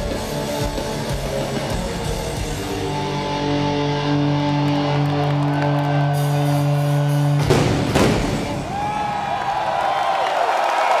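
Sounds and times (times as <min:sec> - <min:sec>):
crowd cheering and screaming: 0:04.7 - 0:06.8, 0:08.5 - 0:11.0.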